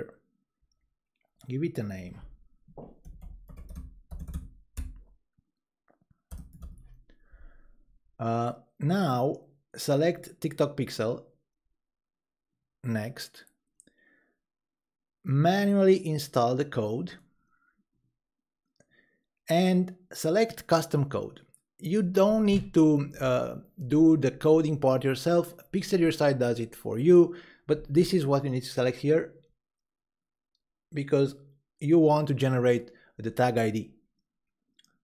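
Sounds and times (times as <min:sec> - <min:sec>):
person speaking: 0:01.4 - 0:02.3, 0:19.5 - 0:29.3
typing on computer keyboard: 0:03.0 - 0:05.0, 0:06.3 - 0:06.9.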